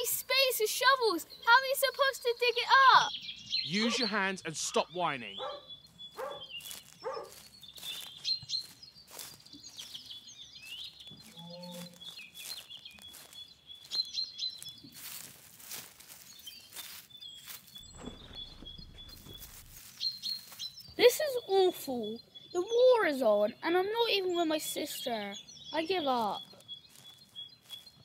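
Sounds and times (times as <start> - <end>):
small birds chirping: 0.0 - 28.0
clicks and grass rustling: 5.9 - 22.2, 25.8 - 28.0.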